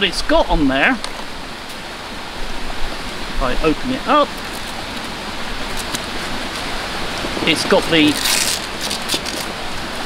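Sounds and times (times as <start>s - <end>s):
running water: 0.0s - 10.0s.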